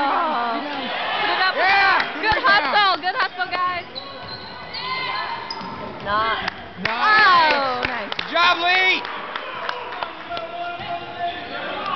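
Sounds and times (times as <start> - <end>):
sneaker squeaks: 3.7 - 6.1.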